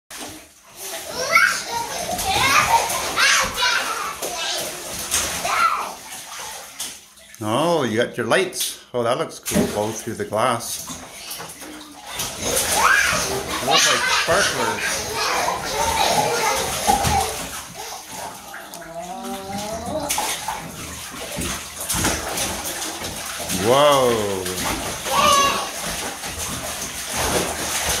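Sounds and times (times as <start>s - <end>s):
bathwater splashing: 0.1s - 28.0s.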